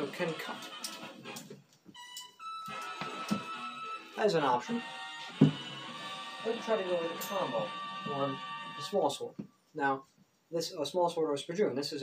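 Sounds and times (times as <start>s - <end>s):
instrument holding long notes: 4.7s - 9.0s.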